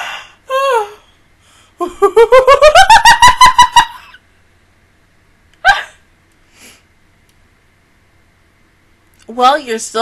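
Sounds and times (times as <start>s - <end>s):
woman laughing: 1.8s - 4.2s.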